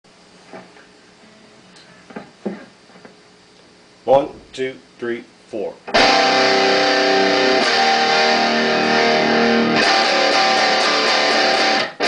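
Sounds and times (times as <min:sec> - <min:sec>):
faint amp hum: 0:00.1 - 0:12.0
electric guitar string sounds: 0:05.9 - 0:12.0.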